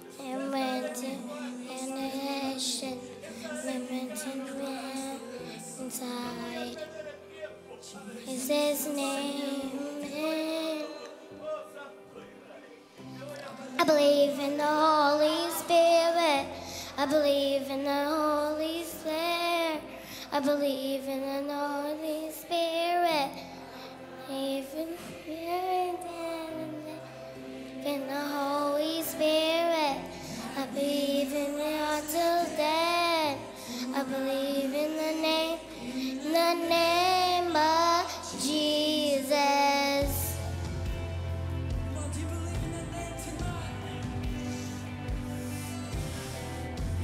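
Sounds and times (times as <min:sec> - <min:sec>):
girl singing into a microphone: 0:00.0 - 0:06.8, 0:08.2 - 0:11.2, 0:13.6 - 0:40.4
low held accompaniment notes: 0:00.0 - 0:47.0.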